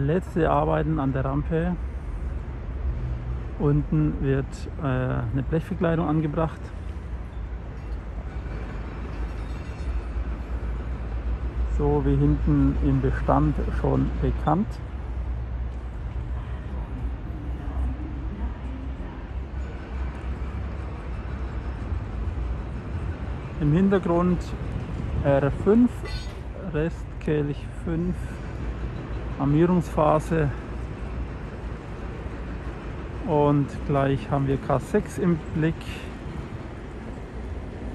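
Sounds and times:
construction site rumble: 0.0s - 37.9s.

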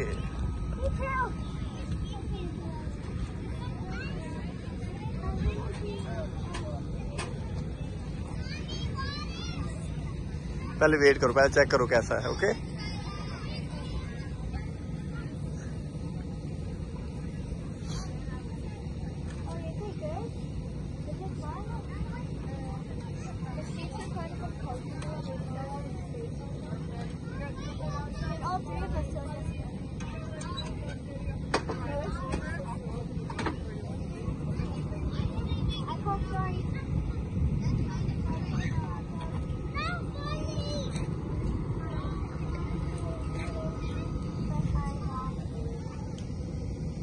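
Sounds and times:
distant voices: 0.0s - 47.0s
steady low rumble: 0.0s - 47.0s.

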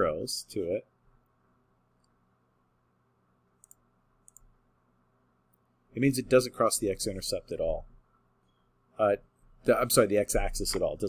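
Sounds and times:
computer mouse clicks: 3.6s - 4.5s.

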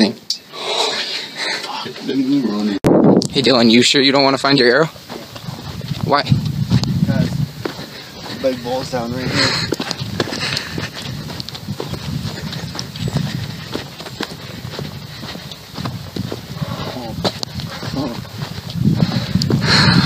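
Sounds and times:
wind rumble on microphone: 2.8s - 20.0s
footsteps on gravel: 3.3s - 20.0s.

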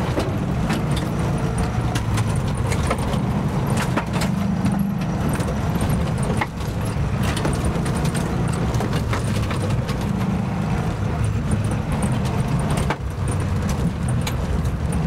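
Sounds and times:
body rattles and knocks: 0.0s - 15.0s
car engine running: 0.0s - 15.0s.

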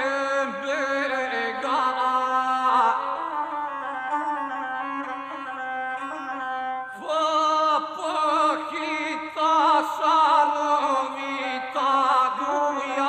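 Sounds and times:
man chanting a song: 0.0s - 5.0s, 6.9s - 13.0s
bowed single-string fiddle: 0.0s - 13.0s.

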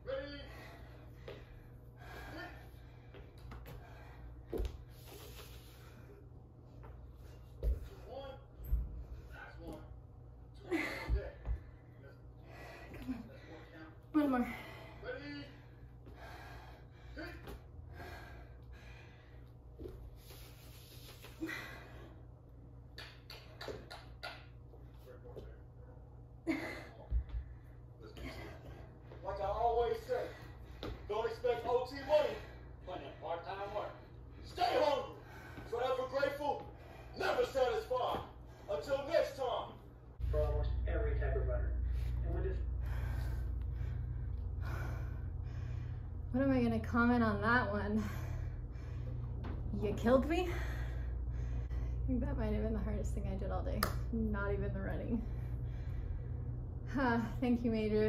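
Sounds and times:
steady low hum: 0.0s - 58.0s
woman breathing hard: 0.4s - 6.5s, 10.7s - 22.6s, 26.4s - 31.3s, 41.7s - 46.3s, 47.7s - 52.1s, 55.1s - 56.9s.

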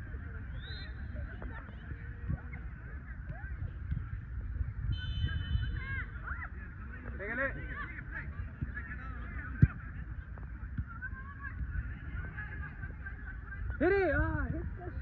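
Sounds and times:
wind rumble on microphone: 0.0s - 15.0s
soccer ball kick thud: 8.4s - 12.5s.

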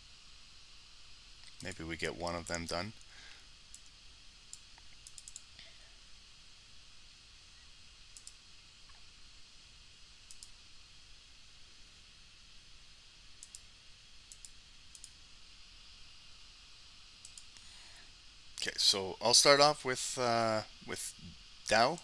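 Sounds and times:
faint steady hiss: 0.0s - 22.0s
man speaking: 1.6s - 3.0s, 18.6s - 22.0s
computer mouse clicks: 3.7s - 5.5s, 8.2s - 9.0s, 10.3s - 10.6s, 13.4s - 13.7s, 14.3s - 15.2s, 17.2s - 17.6s.

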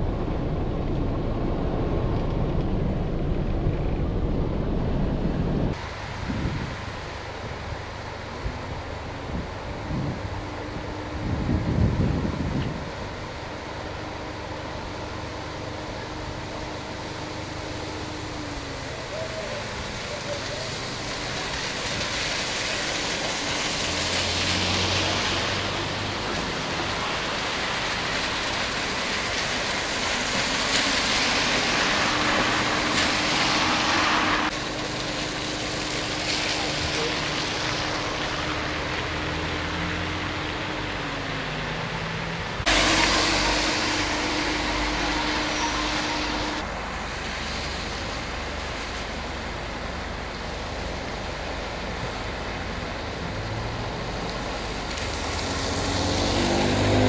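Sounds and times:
low hum: 0.0s - 6.0s, 31.0s - 50.4s
vehicle road noise: 0.0s - 57.0s.

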